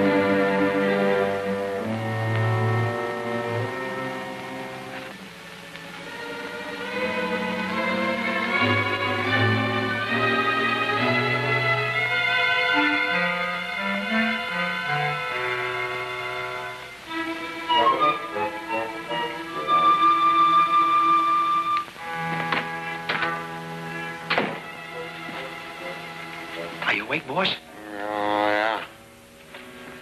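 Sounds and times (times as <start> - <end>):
orchestral strings music: 0.0 - 30.0.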